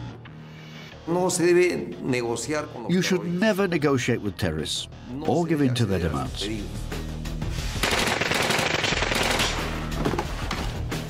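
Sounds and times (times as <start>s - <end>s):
music: 0.0s - 11.0s
automatic gunfire: 7.8s - 9.8s.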